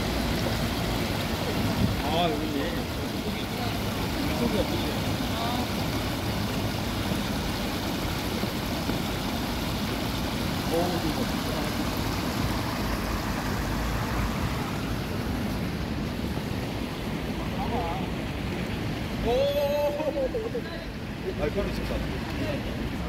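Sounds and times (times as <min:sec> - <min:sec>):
water rushing over rocks: 0:00.0 - 0:23.0.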